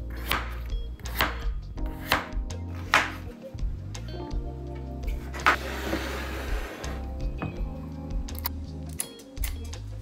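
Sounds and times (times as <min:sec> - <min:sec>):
knife chopping on cutting board: 0:00.1 - 0:03.3.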